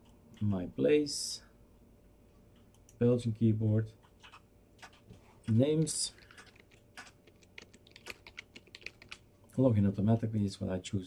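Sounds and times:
computer keyboard typing: 4.0 - 9.3.

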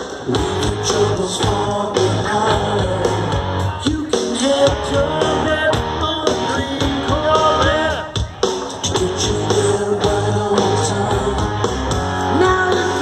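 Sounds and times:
melodic electric guitar: 0.0 - 13.0
rock band playing live: 0.0 - 13.0.

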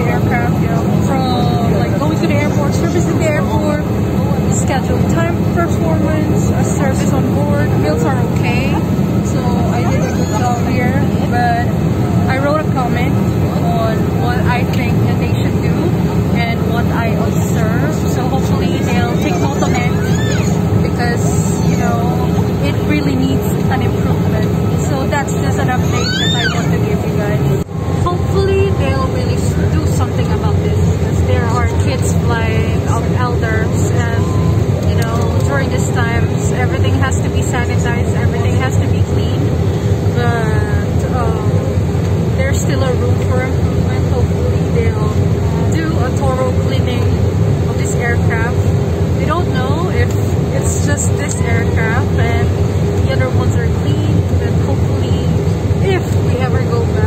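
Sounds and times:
airliner cabin drone: 0.0 - 57.0
indistinct voices talking: 0.0 - 57.0.

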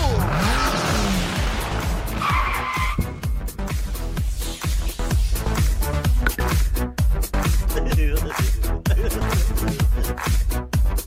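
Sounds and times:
electronic music with steady beat: 0.0 - 11.0.

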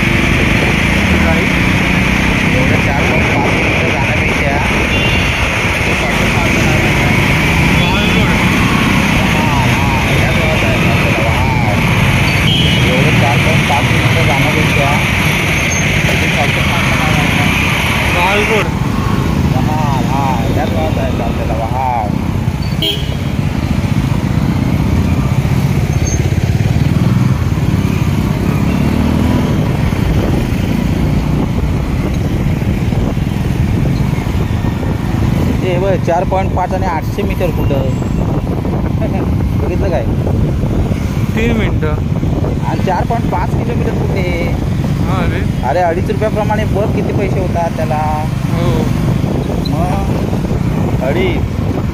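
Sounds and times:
indistinct talking: 0.0 - 23.0, 41.3 - 51.5
motorcycle engine running: 0.0 - 36.5
wind buffeting microphone: 23.2 - 51.9.

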